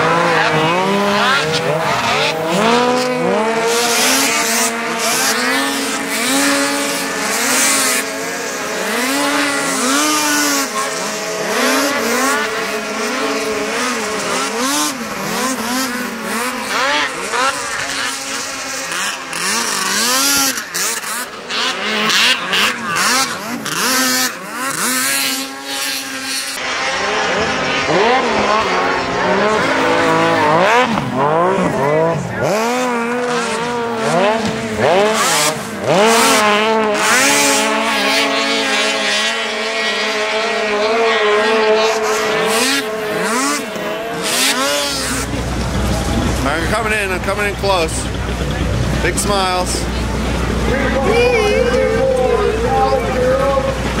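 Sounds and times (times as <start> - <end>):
snowmobile engines revving: 0.0 - 54.0.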